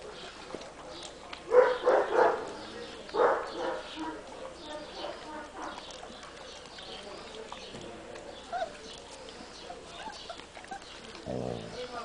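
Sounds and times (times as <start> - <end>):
puppies barking: 1.4 - 12.0.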